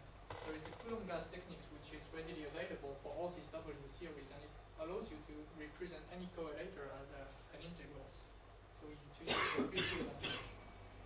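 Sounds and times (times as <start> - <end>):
man coughing: 9.2 - 10.6.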